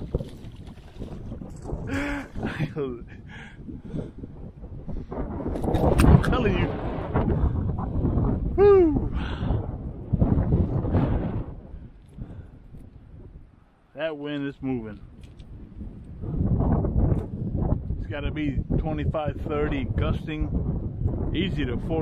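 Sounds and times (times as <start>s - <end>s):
wind buffeting microphone: 0.0s - 22.0s
man exclaiming: 8.5s - 9.2s
man whooping: 8.5s - 9.2s.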